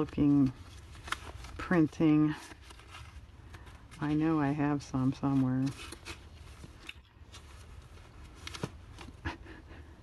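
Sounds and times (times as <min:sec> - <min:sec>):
paper rustling on a tabletop: 0:00.0 - 0:09.3
low steady hum: 0:00.0 - 0:10.0.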